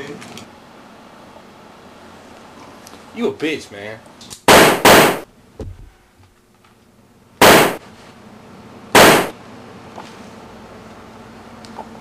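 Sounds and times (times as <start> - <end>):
gunshots: 4.5 - 5.3, 7.4 - 7.8, 9.0 - 9.4.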